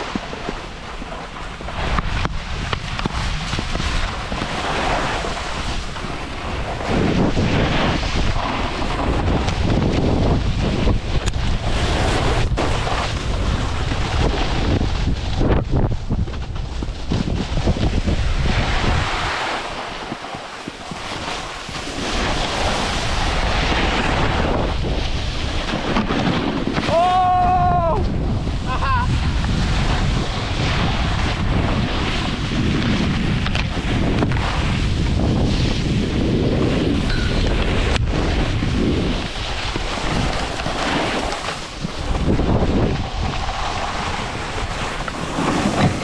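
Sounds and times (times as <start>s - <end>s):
skis scraping over snow: 0.0s - 27.4s, 28.0s - 46.0s
wind buffeting microphone: 0.0s - 46.0s.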